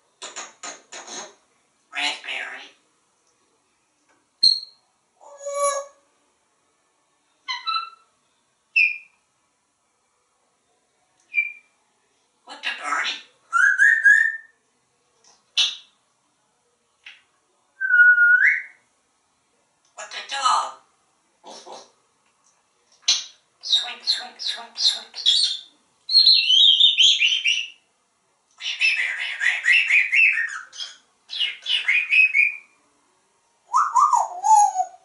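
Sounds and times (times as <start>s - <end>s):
parrot whistles and chirps: 4.4s - 6.0s, 11.3s - 11.7s, 13.5s - 14.5s, 17.8s - 18.8s, 33.7s - 35.0s.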